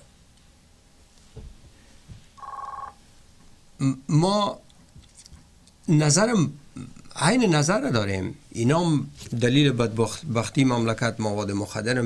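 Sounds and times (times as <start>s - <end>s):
electronic telephone ring: 2.4s - 3.0s.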